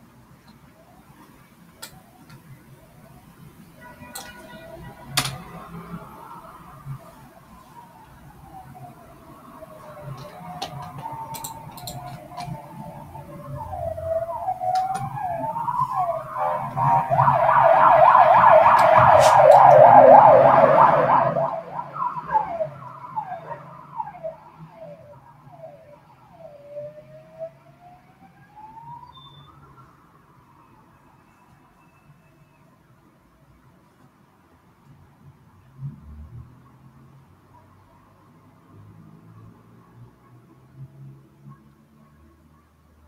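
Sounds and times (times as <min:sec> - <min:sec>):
siren wailing and warbling: 0:04.7 - 0:27.6.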